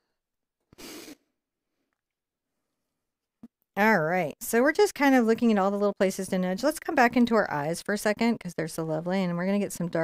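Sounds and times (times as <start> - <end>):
breath out: 0.7 - 1.3.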